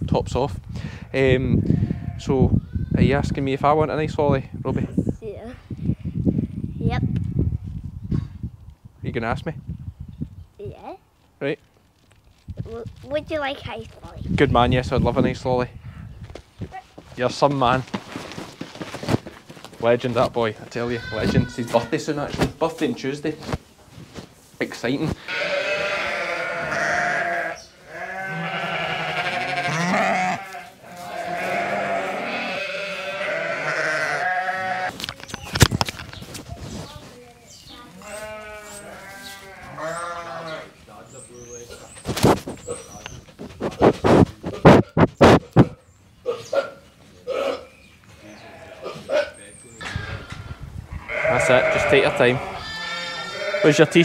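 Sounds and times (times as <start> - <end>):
sheep bleating: 20.8 - 22.1, 25.2 - 34.9, 37.9 - 40.8, 48.2 - 49.1, 49.8 - 54.0.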